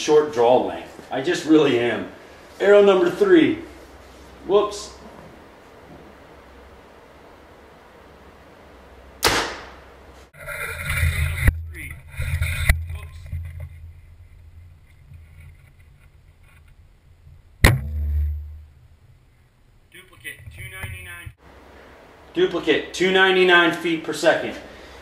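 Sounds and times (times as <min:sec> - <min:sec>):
bow shot sharp crack: 0:09.2 - 0:09.8, 0:17.6 - 0:18.8
low thud: 0:17.6 - 0:19.0.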